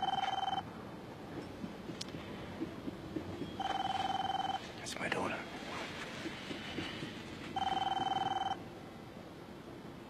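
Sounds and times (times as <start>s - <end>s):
electronic telephone ringing: 0.0s - 0.6s, 3.6s - 4.6s, 7.6s - 8.6s.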